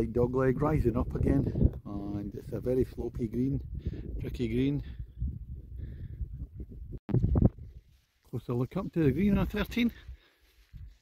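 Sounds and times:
wind buffeting microphone: 0:00.0 - 0:08.0, 0:08.9 - 0:11.0.

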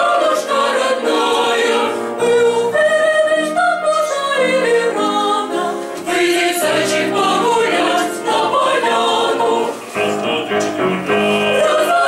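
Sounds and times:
choir singing in parts: 0:00.0 - 0:12.0.

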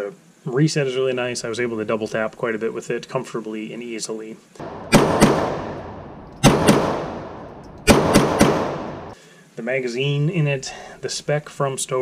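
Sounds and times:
pistol shots in a reverberant range: 0:04.6 - 0:09.2.

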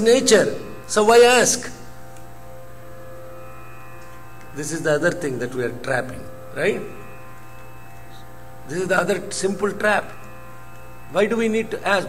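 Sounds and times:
drone of held tones: 0:00.0 - 0:12.0
low hum: 0:00.4 - 0:12.0.

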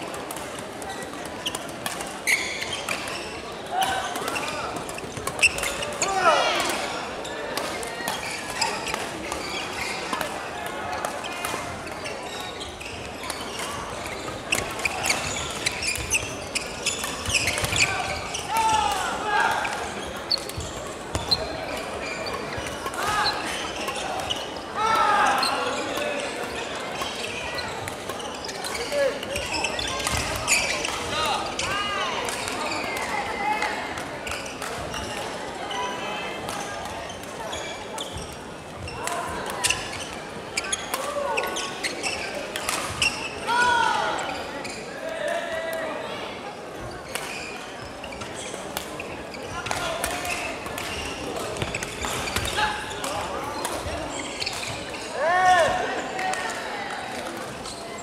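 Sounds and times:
footwork on court floor: 0:00.0 - 0:45.9, 0:46.6 - 0:58.0
voices of players: 0:00.0 - 0:58.0.

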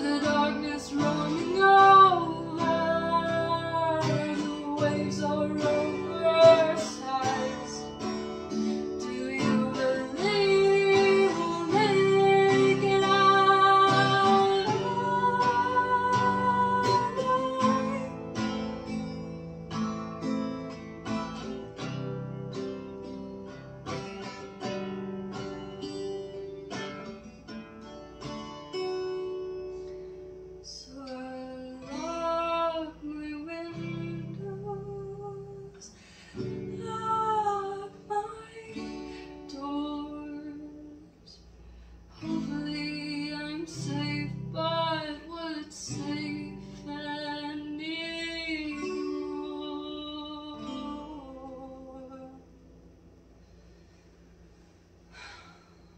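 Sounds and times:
woman singing: 0:00.0 - 0:19.3, 0:30.6 - 0:52.5
acoustic guitar strumming: 0:00.0 - 0:55.8.

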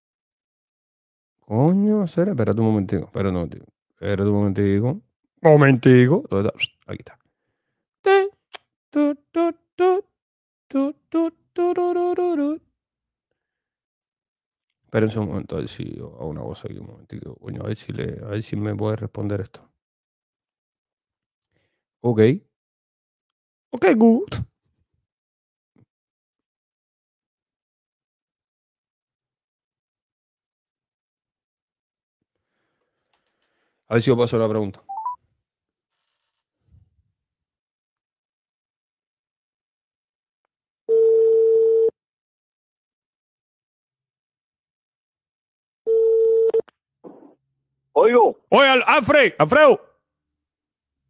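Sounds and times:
person singing wordless tune: 0:08.1 - 0:10.1, 0:10.7 - 0:12.6.

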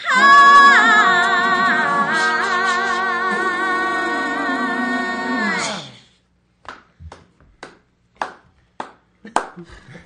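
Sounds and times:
slow handclaps: 0:06.6 - 0:09.6.

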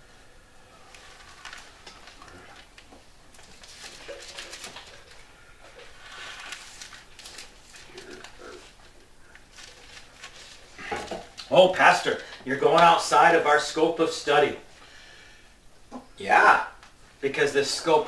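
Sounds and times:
faint rustling and handling noises: 0:00.0 - 0:13.4
pages being turned: 0:00.9 - 0:13.1.

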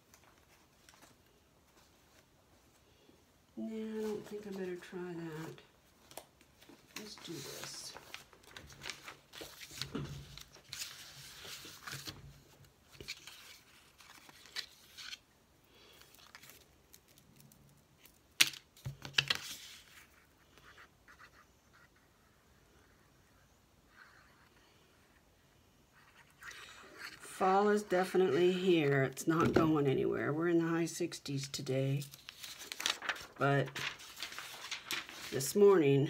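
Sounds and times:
paper rustling and crinkling: 0:00.0 - 0:02.8, 0:03.9 - 0:15.2, 0:15.8 - 0:21.4, 0:31.9 - 0:36.0.

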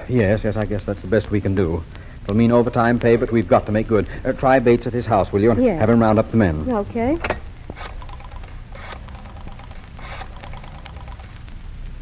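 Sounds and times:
short rasping bursts: 0:07.7 - 0:11.3.

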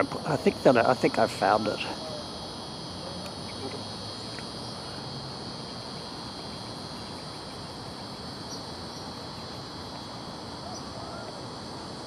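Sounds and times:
high-pitched insect chorus: 0:00.0 - 0:12.0
soft outdoor background hiss: 0:00.0 - 0:12.0.

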